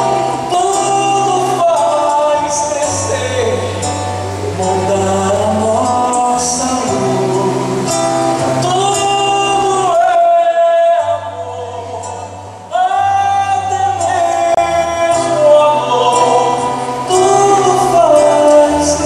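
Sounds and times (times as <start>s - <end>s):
man singing: 0.0s - 19.0s
nylon-string acoustic guitar: 0.0s - 19.0s.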